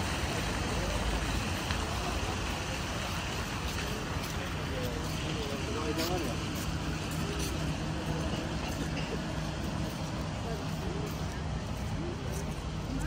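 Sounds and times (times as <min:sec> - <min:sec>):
passers-by talking faintly: 0:00.0 - 0:13.0
traffic rumble: 0:00.0 - 0:13.0.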